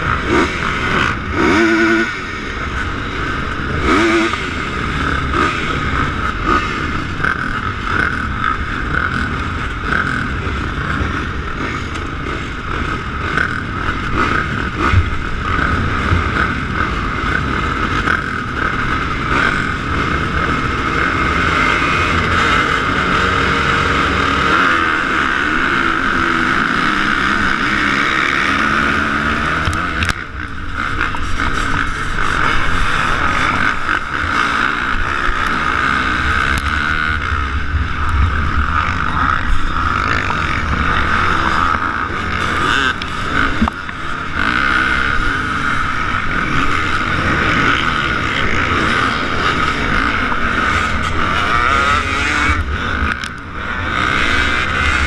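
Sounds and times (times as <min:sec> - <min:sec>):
dirt bikes revving and accelerating: 0:00.0 - 0:55.0.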